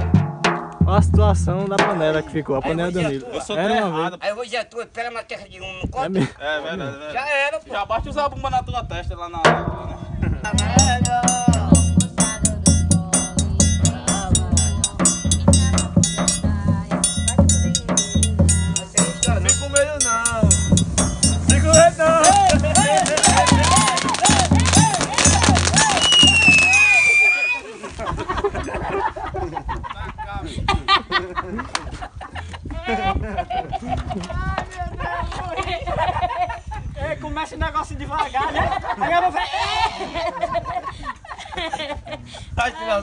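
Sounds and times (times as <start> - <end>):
bass drum beat: 0.0 - 2.9, 9.5 - 27.2
person singing: 10.5 - 20.4
high whistling tone sliding down: 25.8 - 27.7.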